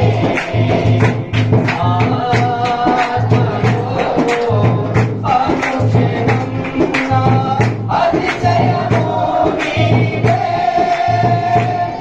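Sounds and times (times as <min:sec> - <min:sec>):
congregation singing: 0:00.0 - 0:12.0
instruments keeping steady beat: 0:00.0 - 0:12.0.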